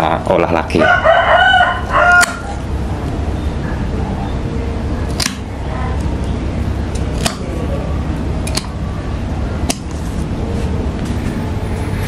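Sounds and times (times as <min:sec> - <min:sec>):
steady low hum: 0:00.0 - 0:12.0
pruning shears snipping: 0:02.2 - 0:02.6, 0:05.1 - 0:06.1, 0:06.9 - 0:07.5, 0:08.4 - 0:08.8, 0:09.6 - 0:10.0.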